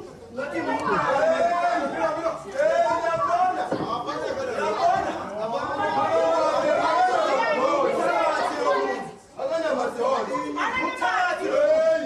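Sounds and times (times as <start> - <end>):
voices talking over one another: 0.1 - 12.0.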